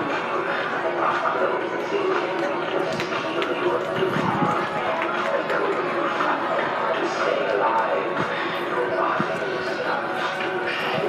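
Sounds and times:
background music: 0.0 - 11.0
people's voices: 0.0 - 11.0.

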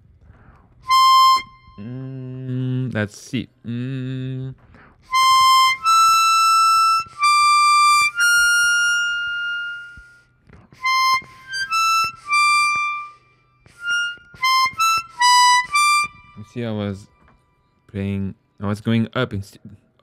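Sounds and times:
chromatic harmonica single notes: 0.0 - 3.0, 3.7 - 18.6.

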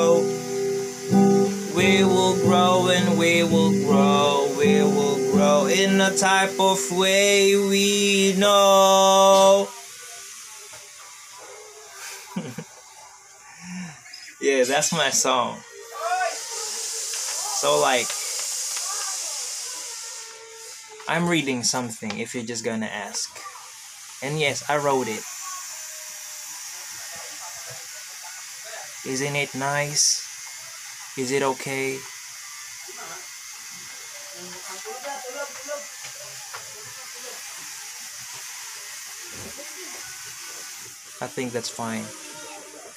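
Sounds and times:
high-pitched hiss: 0.0 - 42.9.

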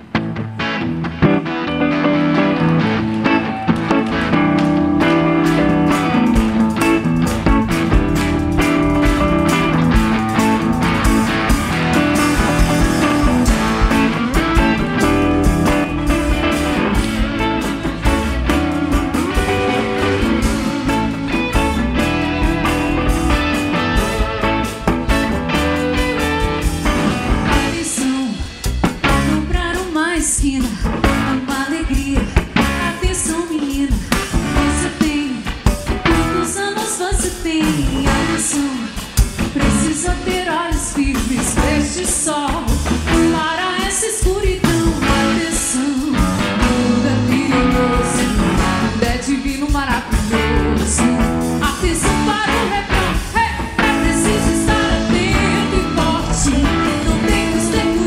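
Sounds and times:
bass guitar: 0.0 - 58.0
drum kit: 0.0 - 58.0
electric guitar lead: 0.0 - 58.0
rhythm guitar: 0.0 - 58.0.

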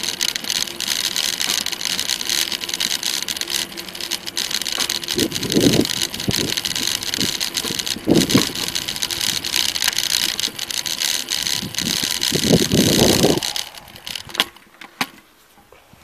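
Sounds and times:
bicycle rolling on tarmac: 0.0 - 15.4
wind on microphone: 5.1 - 9.5, 11.5 - 14.4.

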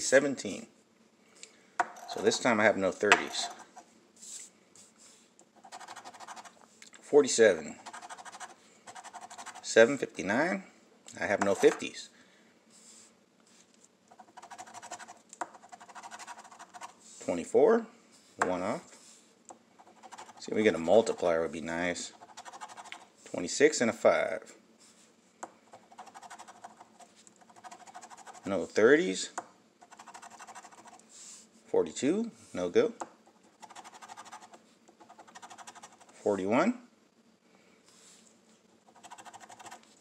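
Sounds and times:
coin scraping scratch-off ticket: 5.7 - 6.5, 7.8 - 9.7, 25.8 - 28.5, 33.6 - 36.2, 38.9 - 39.8.

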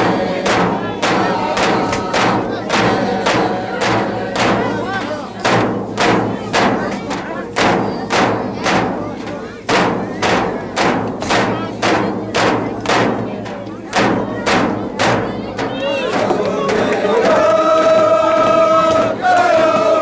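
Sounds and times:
group of voices singing: 0.0 - 13.2, 13.9 - 20.0
frame drums struck with sticks: 0.0 - 20.0.

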